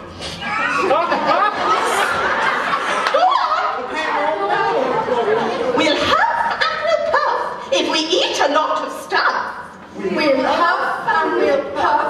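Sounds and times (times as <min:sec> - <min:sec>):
performers talking in a hall: 0:00.0 - 0:12.0.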